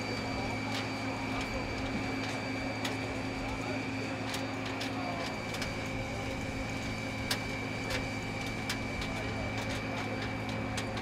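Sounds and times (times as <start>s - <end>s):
parked airliner humming: 0.0s - 11.0s.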